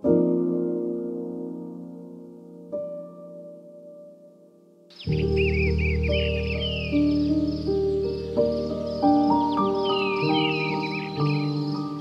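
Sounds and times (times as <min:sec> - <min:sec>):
slow piano music: 0:00.0 - 0:12.0
bird chirping: 0:04.9 - 0:12.0.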